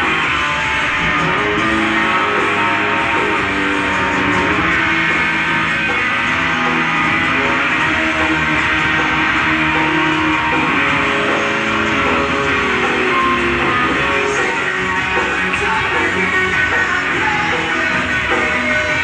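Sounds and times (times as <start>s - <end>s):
electric guitar through pa: 0.0s - 19.0s.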